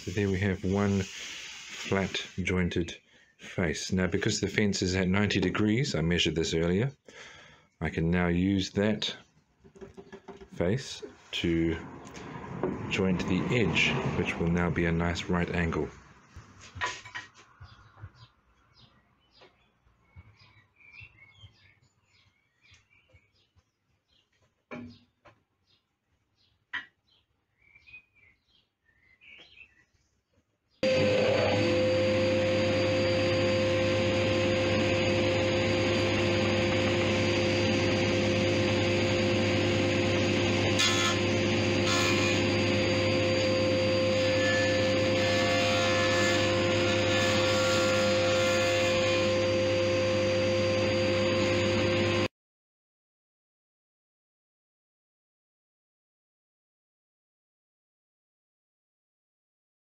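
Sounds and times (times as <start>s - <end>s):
bird chirps: 17.5s - 30.3s
planer-jointer running: 30.8s - 52.3s.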